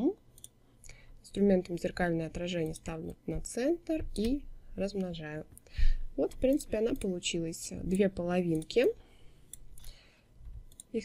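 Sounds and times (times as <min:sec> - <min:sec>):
computer mouse clicking: 0:00.3 - 0:00.5, 0:02.5 - 0:03.2, 0:04.0 - 0:04.4, 0:06.2 - 0:07.2, 0:07.8 - 0:08.8, 0:09.5 - 0:11.0.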